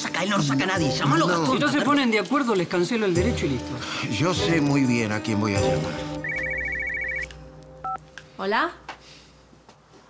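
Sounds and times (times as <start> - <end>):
phone ringtone trill: 6.2 - 8.0.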